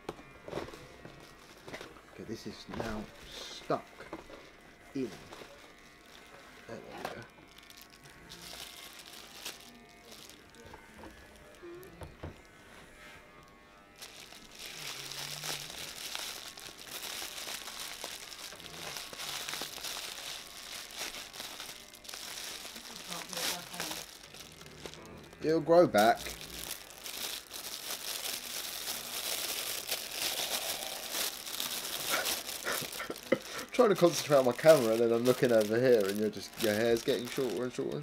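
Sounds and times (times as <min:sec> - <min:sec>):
bubble wrap crinkling: 0:04.2 - 0:38.0.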